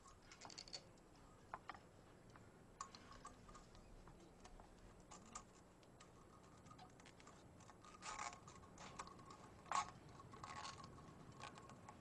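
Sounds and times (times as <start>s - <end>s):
wire and nails clicking on wood: 0.0s - 12.0s.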